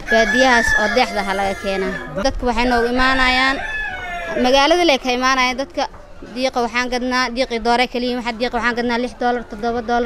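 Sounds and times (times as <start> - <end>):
rooster crowing: 0.0 - 2.2, 2.9 - 4.5.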